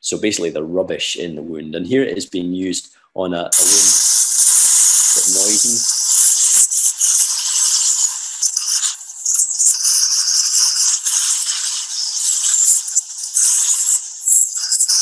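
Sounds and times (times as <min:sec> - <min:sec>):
high-pressure water jet hissing: 0:03.5 - 0:15.0.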